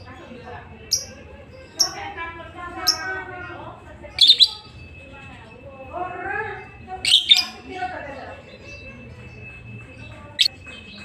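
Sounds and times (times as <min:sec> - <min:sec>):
lovebird chirping shrilly: 0:04.2 - 0:04.6.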